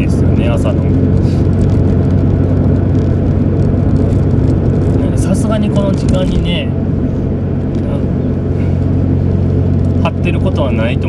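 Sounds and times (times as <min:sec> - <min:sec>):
car engine and tyre drone: 0:00.0 - 0:11.0.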